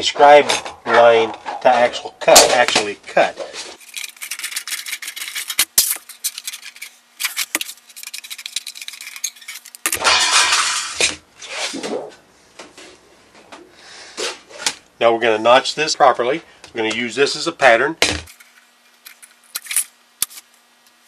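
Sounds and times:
rustling of metal sheet: 0:03.4 - 0:12.1.

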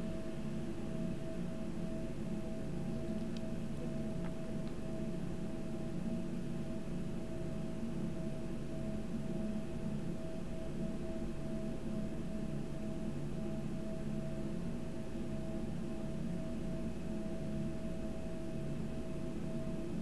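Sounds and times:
constant mid-pitched tone: 0:00.0 - 0:20.0
steady low hum: 0:00.0 - 0:20.0.

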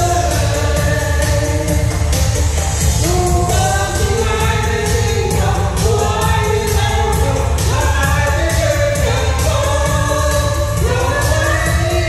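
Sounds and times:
amplified singing: 0:00.0 - 0:12.0
pop backing track with bass: 0:00.0 - 0:12.0.

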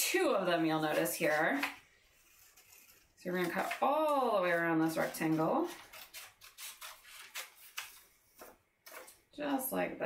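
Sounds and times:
scissors snipping paper: 0:00.9 - 0:09.2.

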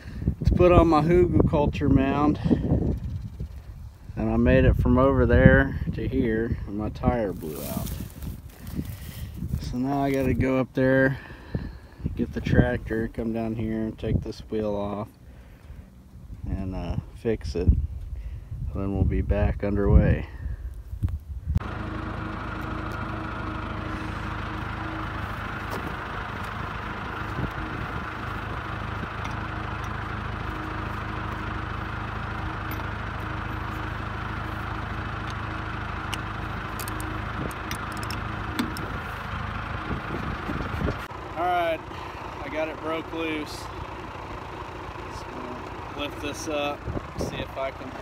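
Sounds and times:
vehicle engine idling: 0:00.0 - 0:48.0.

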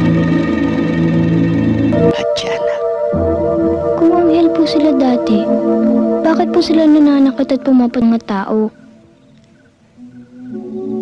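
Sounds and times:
low droning chords: 0:00.0 - 0:09.2
high held tones: 0:00.4 - 0:09.2.

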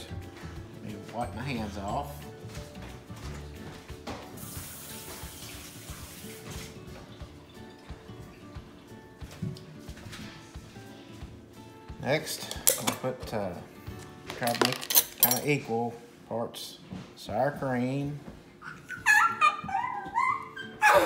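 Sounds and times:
quiet background music: 0:00.0 - 0:21.0
kitchen tap running: 0:04.1 - 0:08.0.

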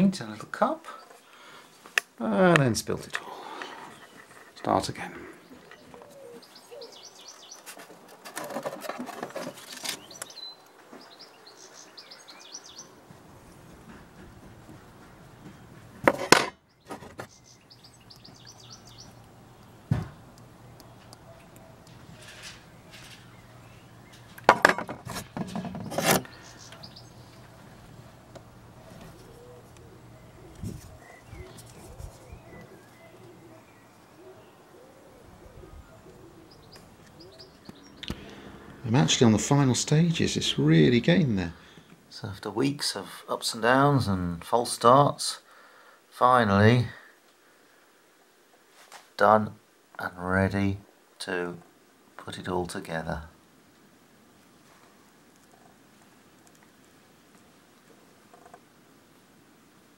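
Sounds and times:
faint birdsong chirping: 0:00.0 - 0:59.9
knocking and rustling: 0:07.5 - 0:10.1, 0:13.1 - 0:17.4, 0:24.1 - 0:26.3.

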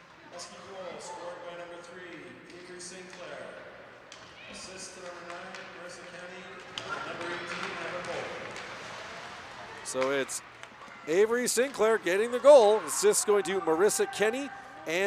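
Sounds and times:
sticks and puck clacking: 0:04.9 - 0:12.6
people talking: 0:11.1 - 0:15.0.

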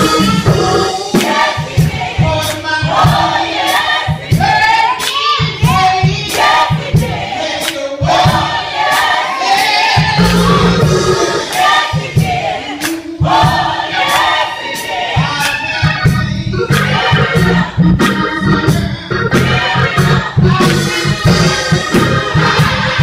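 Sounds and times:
deep bass notes: 0:00.0 - 0:01.0, 0:10.2 - 0:11.5, 0:16.0 - 0:23.0
steady beat: 0:00.0 - 0:23.0
women's choir singing gospel: 0:00.0 - 0:23.0.

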